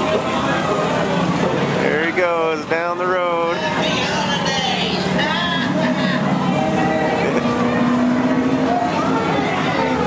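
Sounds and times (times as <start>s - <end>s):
many people talking: 0.0s - 10.0s.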